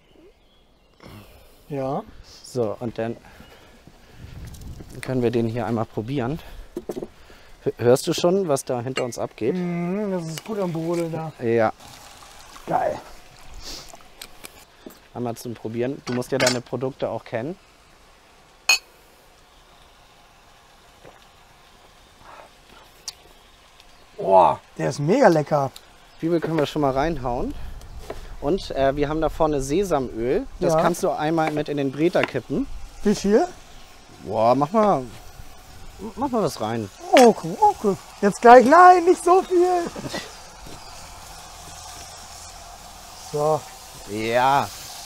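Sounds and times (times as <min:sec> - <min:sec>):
meat sizzling in a pot: 0:01.7 - 0:45.0
drinking glasses clinking: 0:18.7 - 0:18.9.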